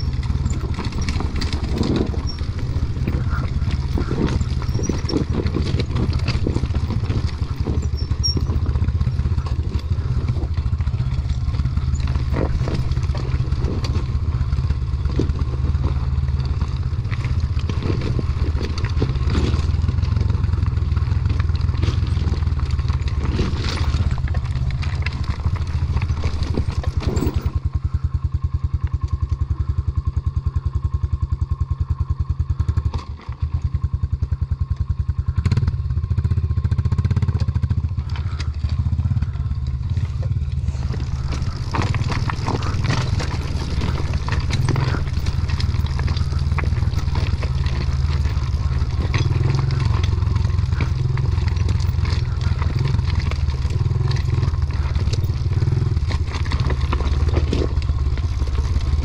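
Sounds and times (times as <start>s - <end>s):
rocks clattering under tyres: 0.0s - 31.4s, 32.5s - 59.0s
dirt bike engine running: 0.0s - 59.0s.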